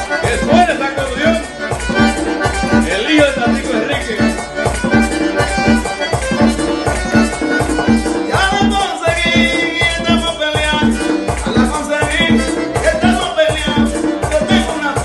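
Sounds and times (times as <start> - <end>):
button accordion playing: 0.0 - 15.0
percussion beat: 0.0 - 15.0.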